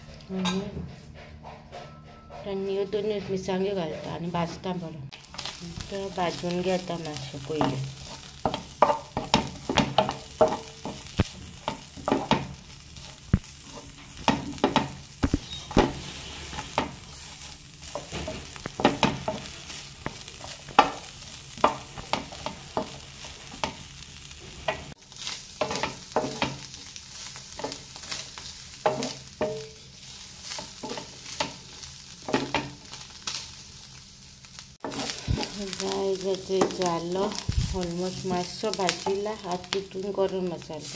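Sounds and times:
spatula scraping pan: 1.4s - 33.5s, 34.8s - 39.8s
faint sizzle: 4.7s - 40.9s.

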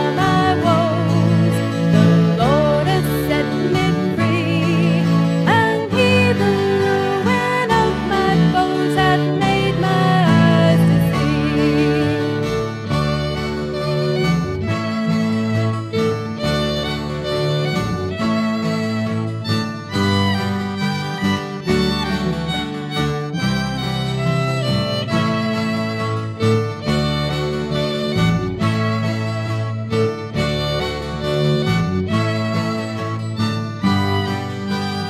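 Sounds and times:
instrumental rock with fiddle: 0.0s - 35.0s.

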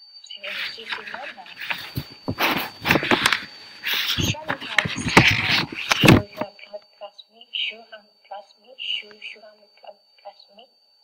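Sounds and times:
faint steady high tone: 0.0s - 11.0s
person speaking in interview: 0.4s - 2.0s, 4.2s - 6.8s.

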